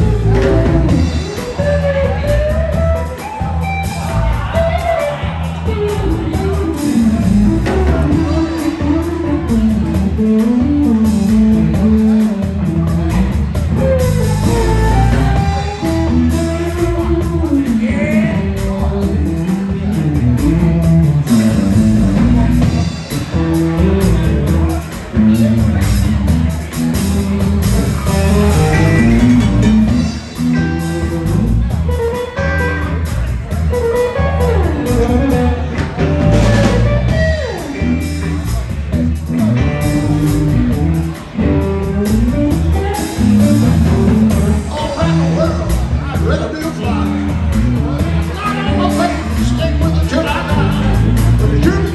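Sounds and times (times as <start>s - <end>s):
drum kit: 0.0s - 51.9s
electric bass: 0.0s - 51.9s
electric guitar melody: 0.0s - 51.9s
live band playing: 0.0s - 51.9s.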